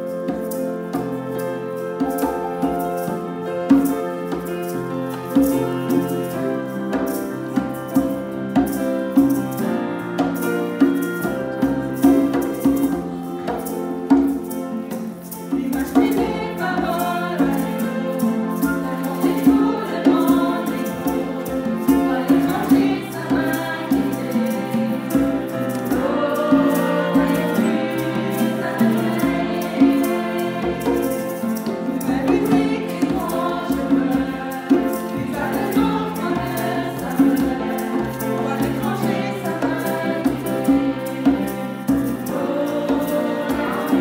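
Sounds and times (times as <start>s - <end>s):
conga drums: 0.0s - 44.0s
piano: 0.0s - 44.0s
steady percussion beat: 0.0s - 44.0s
violins: 0.0s - 44.0s
group of voices singing: 14.4s - 44.0s.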